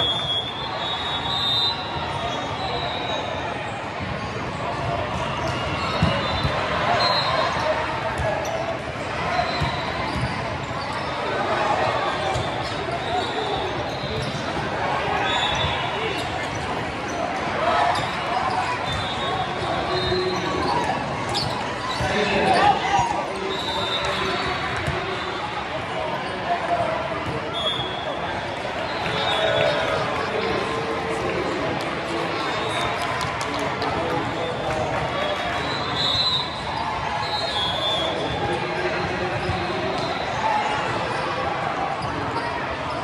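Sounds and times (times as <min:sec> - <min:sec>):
crowd chatter in hall: 0:00.0 - 0:43.0.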